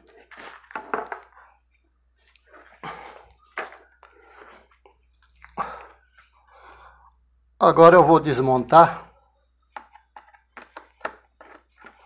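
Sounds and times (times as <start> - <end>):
handling scrapes and rustles: 0.0 - 1.2, 11.4 - 12.0.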